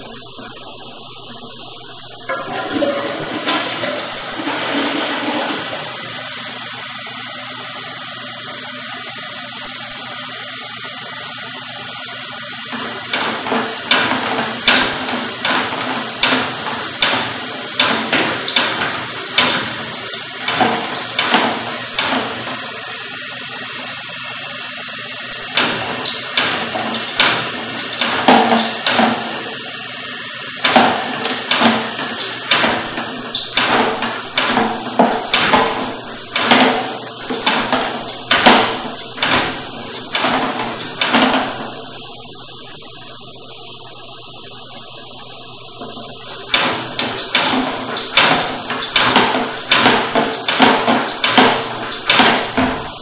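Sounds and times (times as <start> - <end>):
water rushing in a drain: 0.0 - 53.0
sharp knocks: 2.3 - 5.7, 30.6 - 41.8, 45.9 - 53.0.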